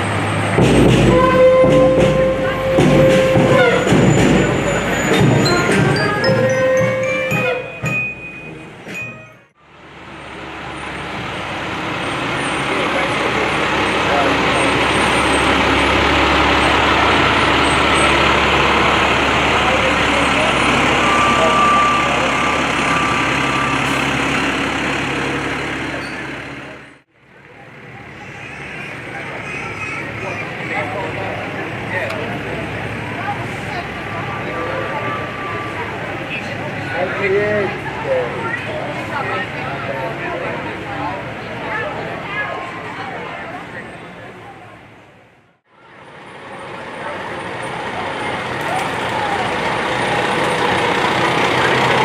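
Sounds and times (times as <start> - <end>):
fire engine passing: 0.0 - 8.9, 9.5 - 52.0
street sound with voices: 0.0 - 52.0.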